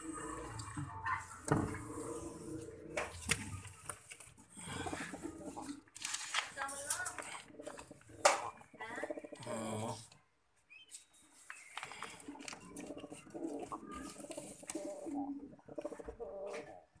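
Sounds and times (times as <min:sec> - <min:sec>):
pigeons cooing: 0:00.0 - 0:03.2, 0:04.6 - 0:05.8, 0:07.4 - 0:09.8, 0:12.0 - 0:16.8.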